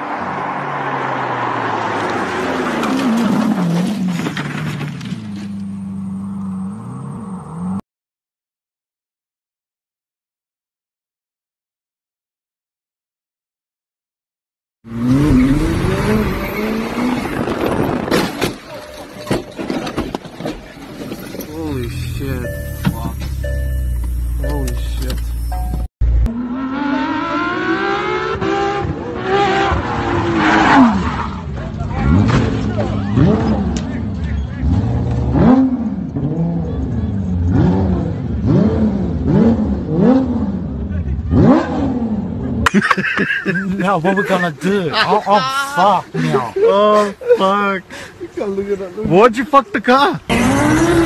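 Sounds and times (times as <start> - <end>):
car engines revving: 0.0 - 7.8, 14.9 - 48.4, 49.1 - 51.0.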